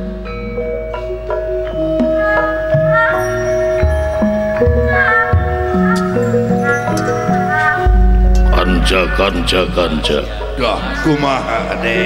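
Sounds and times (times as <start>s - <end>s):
metallophone melody: 0.0s - 12.0s
deep low tone: 4.2s - 12.0s.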